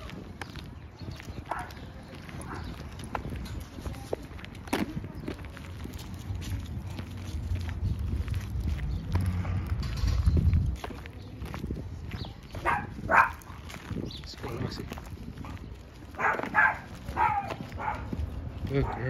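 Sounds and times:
footsteps on gravel: 0.0 - 19.0.

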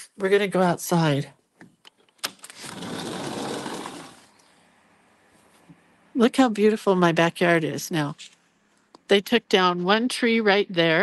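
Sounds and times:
sliding door rolling open: 2.5 - 4.3.

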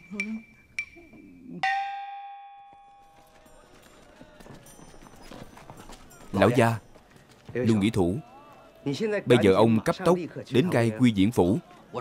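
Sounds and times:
metallic bell strike ringing: 0.4 - 3.5.

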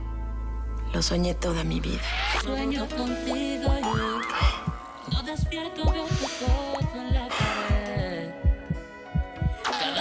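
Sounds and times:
soft music with held notes: 0.0 - 10.0
cartoon heartbeat thumps: 3.7 - 9.7.

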